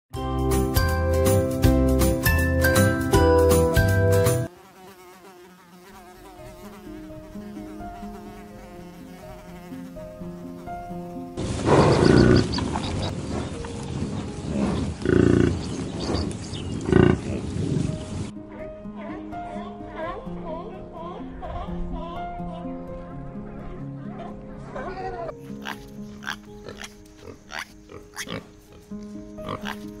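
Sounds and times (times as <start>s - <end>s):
musical intro jingle: 0.2s - 4.5s
soft piano music: 0.2s - 4.5s, 6.2s - 15.6s, 17.8s - 30.0s
bison bellowing: 11.6s - 13.1s, 14.4s - 16.2s, 16.8s - 17.5s.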